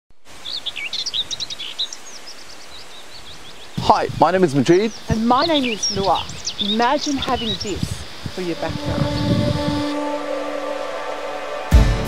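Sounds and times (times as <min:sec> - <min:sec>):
birds chirping: 0:00.1 - 0:11.9
steady background hiss: 0:00.2 - 0:12.0.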